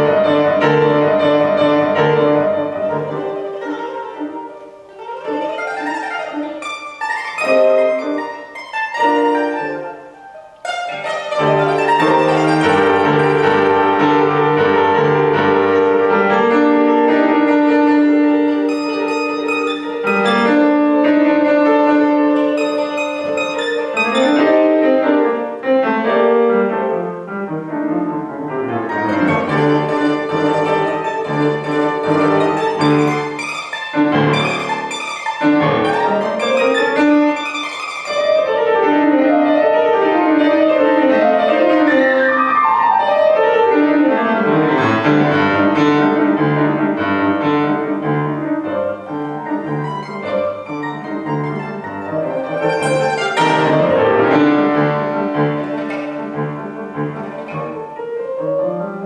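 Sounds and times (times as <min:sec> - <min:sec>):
mandolin plucked and tremoloed: 0:00.0 - 0:27.0, 0:27.6 - 0:59.0
grand piano playing: 0:00.0 - 0:59.0.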